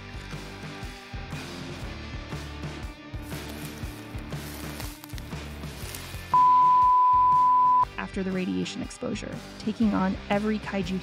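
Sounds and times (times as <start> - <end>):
background music: 0.0 - 11.0
loud high-pitched beep: 6.4 - 7.8.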